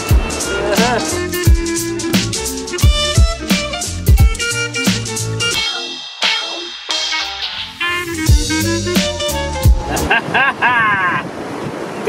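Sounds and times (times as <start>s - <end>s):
ocean surf: 0.0s - 2.5s, 5.7s - 12.0s.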